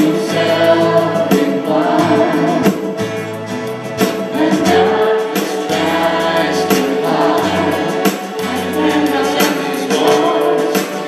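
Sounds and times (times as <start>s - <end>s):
electric bass: 0.0s - 9.9s
acoustic guitar: 0.0s - 11.0s
keyboard: 0.0s - 11.0s
voices singing together: 0.0s - 11.0s.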